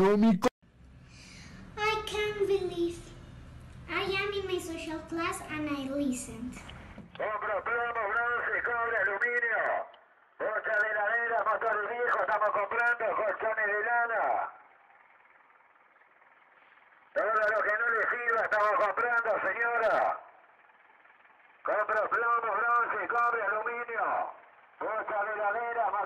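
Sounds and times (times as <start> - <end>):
man speaking through loudspeaker: 7.2 - 14.6, 17.2 - 20.3, 21.7 - 26.0.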